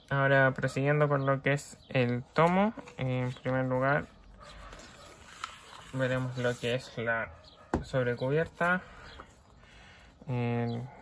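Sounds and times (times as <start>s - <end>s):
paper dust jacket rustling: 2.9s - 7.0s.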